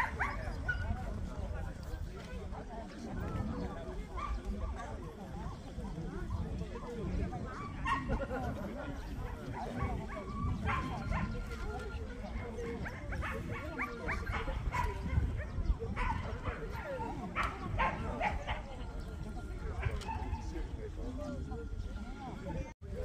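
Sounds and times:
dogs barking: 0.0 - 1.3, 4.0 - 5.6, 7.4 - 20.6
indistinct background voices: 0.0 - 23.0.

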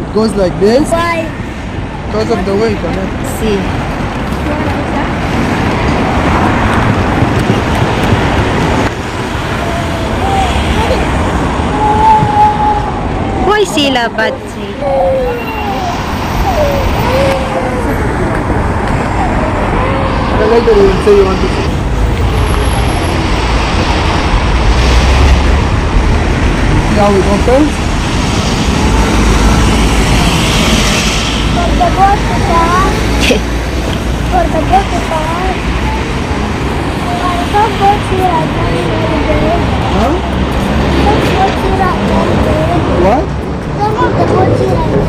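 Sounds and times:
road traffic rushing past: 0.0 - 45.0.

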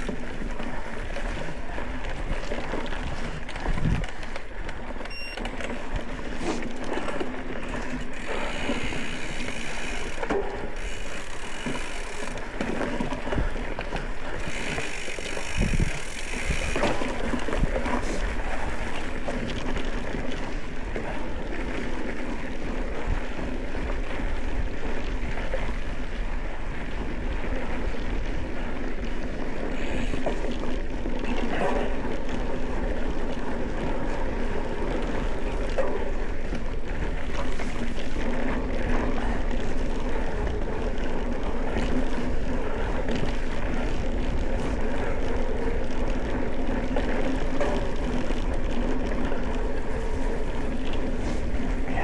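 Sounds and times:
wind on microphone: 0.0 - 4.3, 13.1 - 21.6
bike rattling over bumps: 0.0 - 52.0
tyre noise on dirt trail: 0.0 - 52.0.

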